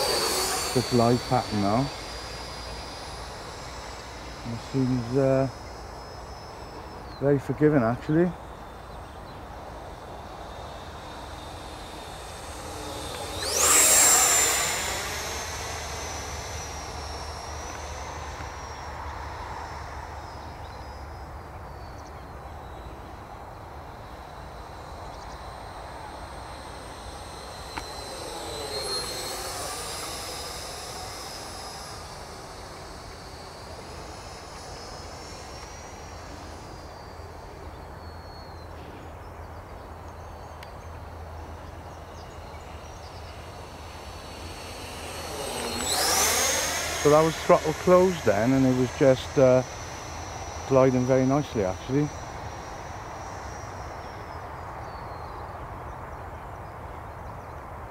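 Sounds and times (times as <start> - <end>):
model jet whine flying past: 0.0 - 57.9.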